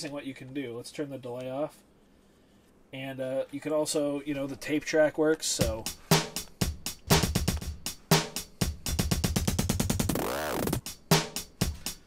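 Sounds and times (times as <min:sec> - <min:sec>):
sampled drum beat: 0:05.5 - 0:12.0
beat stutter effect: 0:09.7 - 0:10.8.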